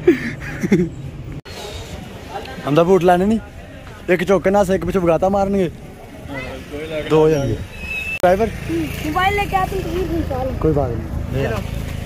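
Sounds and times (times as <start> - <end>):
voices talking: 1.5 - 11.7.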